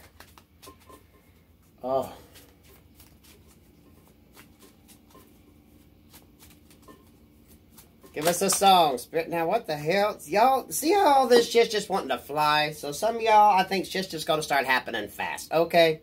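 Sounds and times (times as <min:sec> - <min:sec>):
cards being shuffled: 0:00.0 - 0:00.9, 0:01.6 - 0:08.7.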